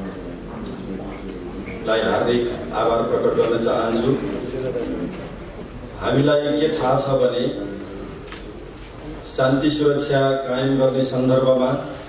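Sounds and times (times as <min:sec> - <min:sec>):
man speaking: 0:00.0 - 0:05.2, 0:06.0 - 0:08.1.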